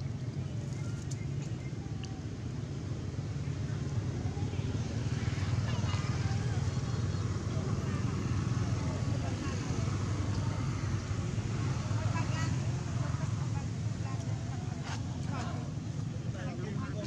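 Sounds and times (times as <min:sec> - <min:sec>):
faint indistinct voices: 0:00.0 - 0:17.0.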